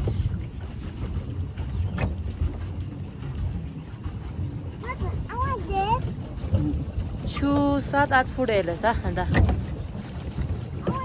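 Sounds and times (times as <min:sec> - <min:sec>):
water around boat: 0:00.0 - 0:11.0
wind on microphone: 0:00.0 - 0:11.0.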